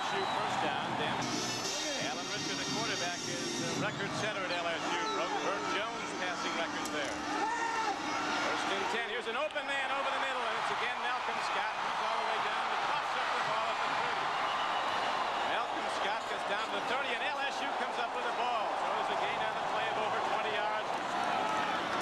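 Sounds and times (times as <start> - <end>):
large crowd voices: 0.0 - 22.0.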